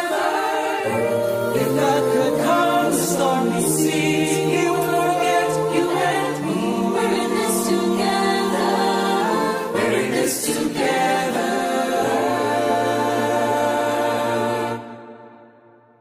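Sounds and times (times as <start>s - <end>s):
choir singing sustained chords: 0.0s - 16.0s.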